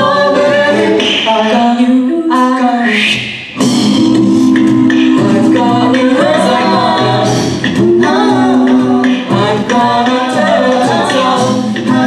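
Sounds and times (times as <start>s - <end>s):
a cappella group singing: 0.0s - 12.0s
vocal percussion beat: 0.0s - 12.0s.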